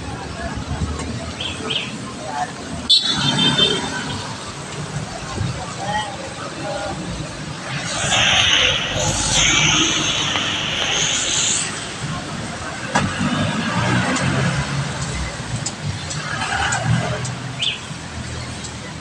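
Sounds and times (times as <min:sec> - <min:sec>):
voices in background: 0:00.0 - 0:19.0
tires hissing on flooded road: 0:03.4 - 0:15.5.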